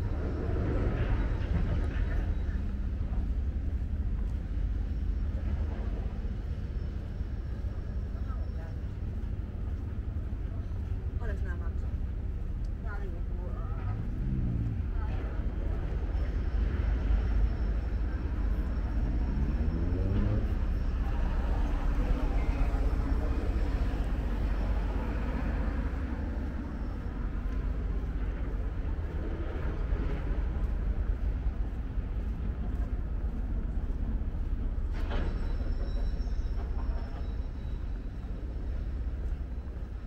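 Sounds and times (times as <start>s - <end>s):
city traffic rumble: 0.0s - 40.0s
vehicle engine passing: 13.8s - 15.3s, 18.7s - 25.4s.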